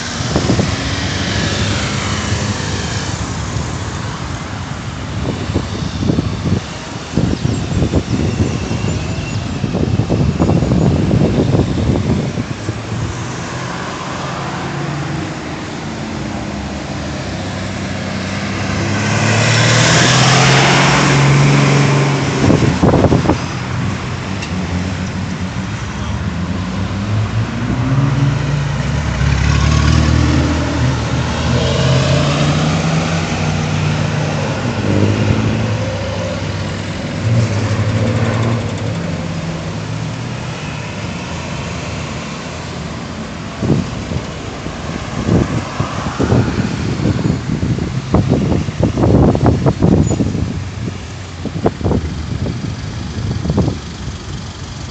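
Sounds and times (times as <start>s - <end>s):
vehicles passing: 0.0s - 54.9s.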